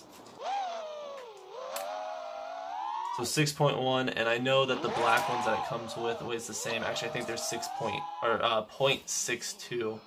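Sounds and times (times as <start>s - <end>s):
drone motors whining: 0.0s - 8.6s.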